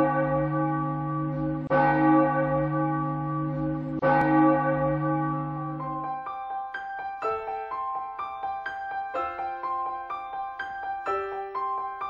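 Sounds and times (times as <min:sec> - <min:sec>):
bell tolling: 0:00.0 - 0:07.1.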